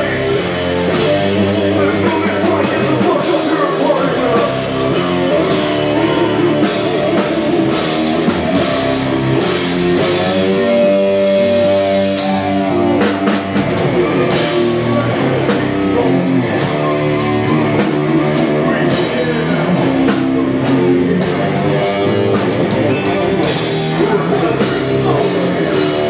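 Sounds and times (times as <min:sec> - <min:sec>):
drum and cymbal hits: 0:00.0 - 0:26.0
electric bass: 0:00.0 - 0:26.0
electric guitar: 0:00.0 - 0:26.0.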